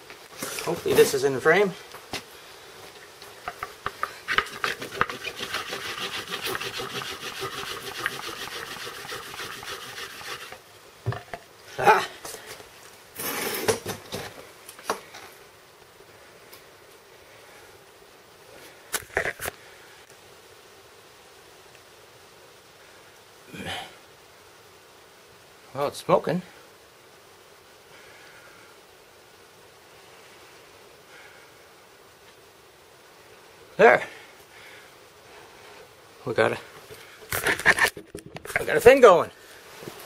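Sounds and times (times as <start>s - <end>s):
wooden board scraping fast: 3.5s - 10.6s, 37.4s - 38.8s.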